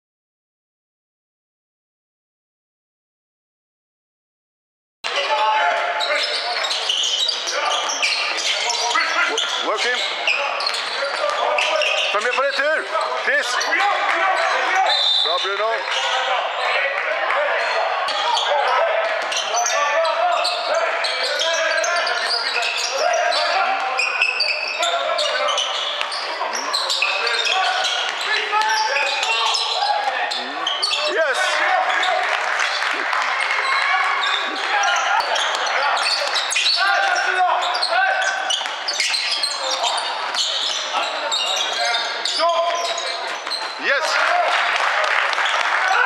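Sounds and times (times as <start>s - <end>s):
players and spectators calling out: 5.1s - 46.0s.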